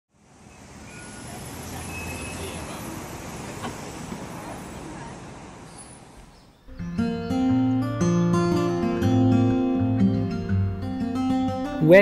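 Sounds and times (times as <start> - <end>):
city traffic rumble: 0.1 - 10.8.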